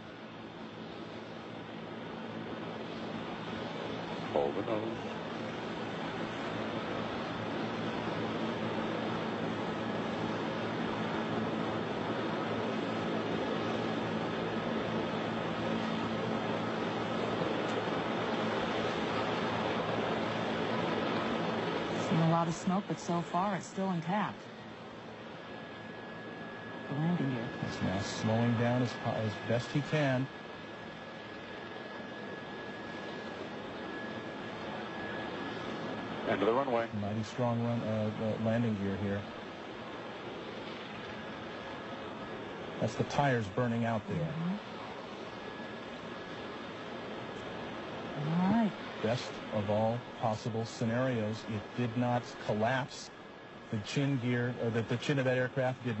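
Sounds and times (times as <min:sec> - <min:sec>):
aircraft noise hiss: 0:00.0 - 0:56.0
helicopter engine and rotor noise: 0:00.0 - 0:56.0.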